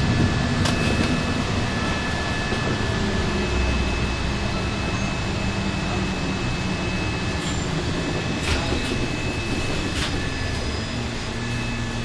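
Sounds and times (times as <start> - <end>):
bus engine and road noise: 0.0 - 12.0
thin high whine: 0.0 - 12.0.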